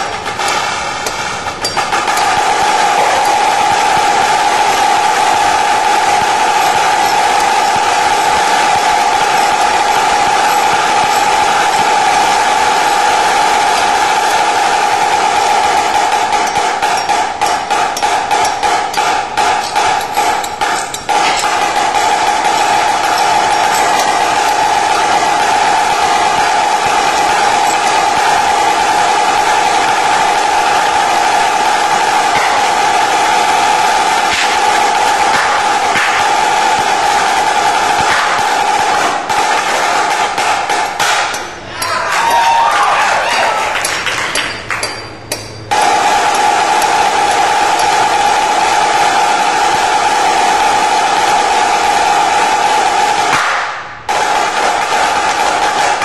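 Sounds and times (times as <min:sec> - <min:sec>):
marching snare drum playing: 0:00.0 - 0:41.2, 0:45.7 - 0:56.0.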